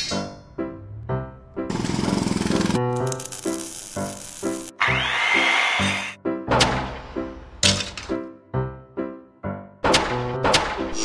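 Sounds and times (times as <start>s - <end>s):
background music: 0.0s - 11.0s
welding torch hiss: 2.7s - 5.9s.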